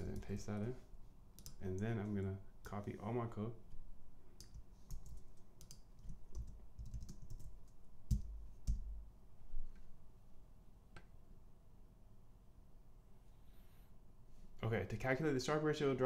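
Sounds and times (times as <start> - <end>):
computer keyboard keystrokes: 1.4 - 1.9, 4.4 - 8.9.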